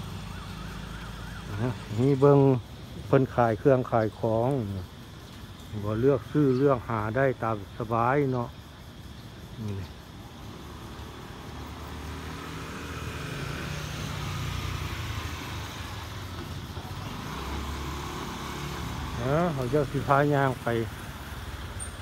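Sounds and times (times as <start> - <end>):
motorcycle engine: 0.0 - 2.6
street traffic: 0.0 - 22.0.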